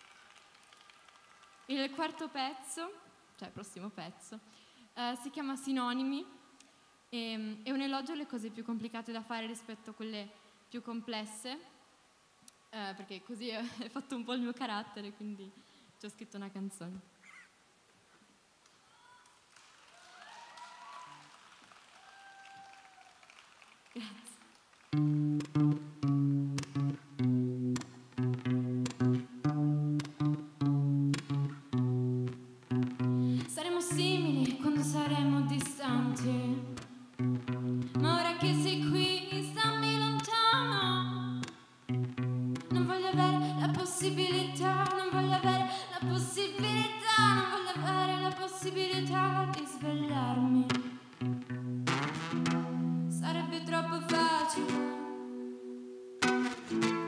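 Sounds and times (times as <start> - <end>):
audience applause: 0.0 - 1.7, 19.3 - 24.9
distant cheers: 18.9 - 23.5
acoustic guitar: 24.9 - 57.0
woman singing: 33.4 - 36.8, 37.9 - 41.5, 42.7 - 51.0, 53.1 - 55.4.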